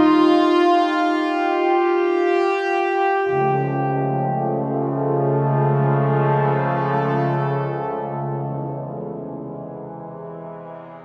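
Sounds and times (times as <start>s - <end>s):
held brass chord: 0.0s - 11.0s.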